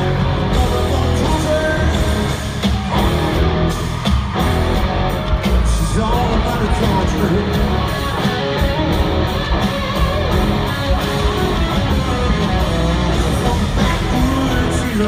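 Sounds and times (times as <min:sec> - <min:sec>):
live country-rock band playing: 0:00.0 - 0:15.0.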